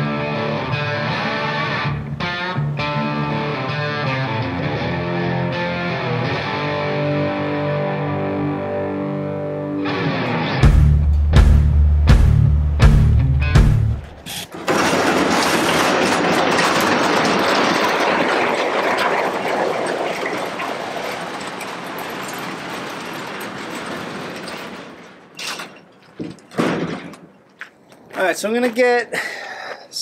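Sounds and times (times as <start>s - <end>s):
caster wheels grinding on gravel: 14.3s - 26.2s
footsteps crunching on gravel: 27.4s - 28.9s.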